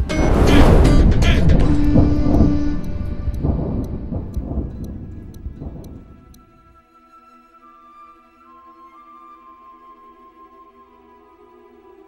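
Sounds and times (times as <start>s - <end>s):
low thunder-like rumble: 0.0s - 6.8s
faint sharp ticks: 1.9s - 6.7s.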